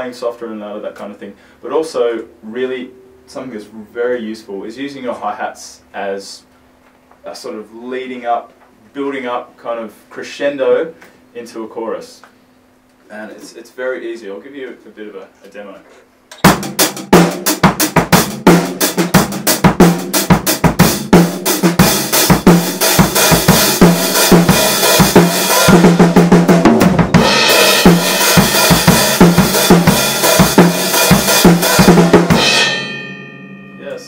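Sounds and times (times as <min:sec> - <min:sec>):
cymbals ringing: 0:02.5 - 0:03.8, 0:21.8 - 0:34.0
rock drum beat: 0:16.3 - 0:33.8.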